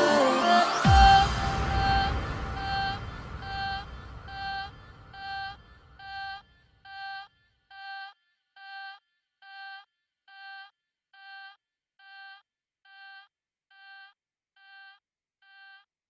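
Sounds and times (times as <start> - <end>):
electronic dance music final hit: 0.0 - 6.4
repeating synth note: 0.0 - 7.3.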